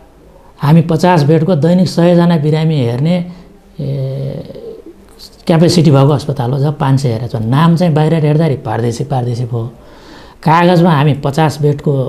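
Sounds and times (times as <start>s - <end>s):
man speaking: 0.6s - 9.8s, 10.4s - 12.0s.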